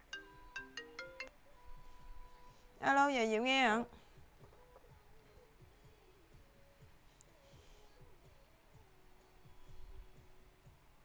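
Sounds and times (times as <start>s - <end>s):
faint smartphone ringtone: 0.0s - 2.5s.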